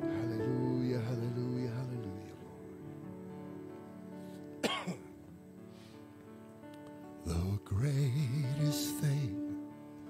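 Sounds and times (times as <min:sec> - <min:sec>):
person clearing throat: 0:04.6 - 0:05.1.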